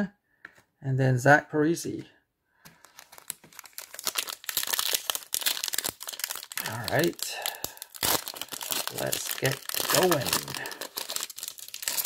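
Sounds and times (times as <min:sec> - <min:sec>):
foil wrapper crinkling: 0:02.8 - 0:12.0.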